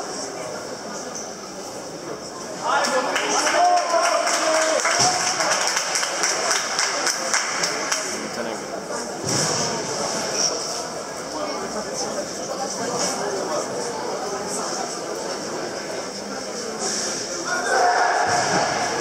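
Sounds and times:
murmur of voices in echoing hall: 0:00.0 - 0:19.0.

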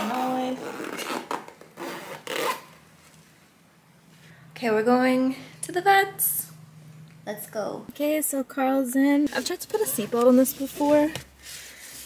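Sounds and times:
zipper being drawn closed: 0:00.0 - 0:02.8.

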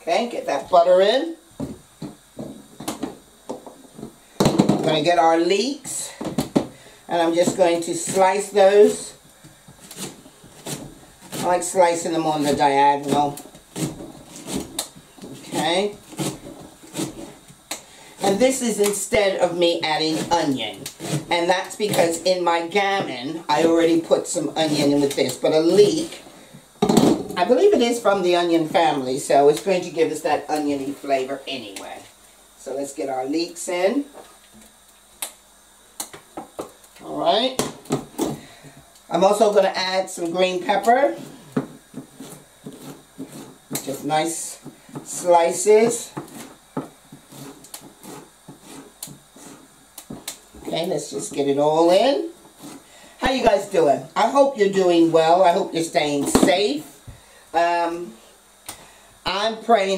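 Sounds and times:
knife cutting on a board: 0:42.0 - 0:43.8, 0:46.2 - 0:50.3.

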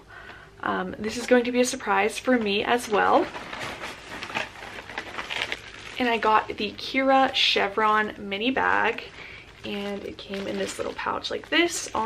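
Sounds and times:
wrapping paper rustling: 0:01.1 - 0:07.6, 0:08.4 - 0:12.0.

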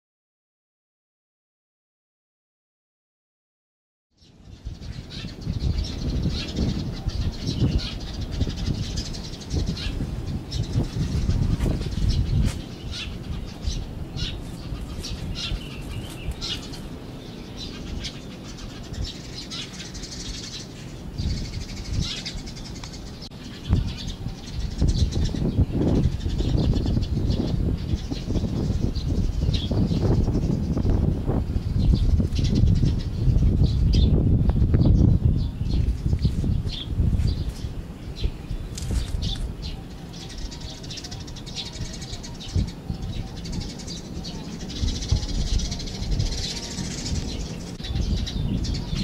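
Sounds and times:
small birds chirping: 0:04.2 - 0:49.0.

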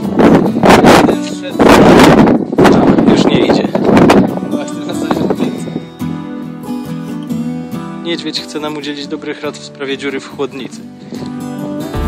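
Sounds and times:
wind buffeting microphone: 0:00.0 - 0:07.1
music: 0:00.0 - 0:12.0.

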